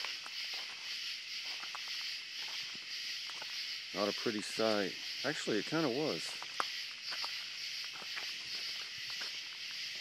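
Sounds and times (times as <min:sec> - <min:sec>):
night insects chirping: 0:00.0 - 0:10.0.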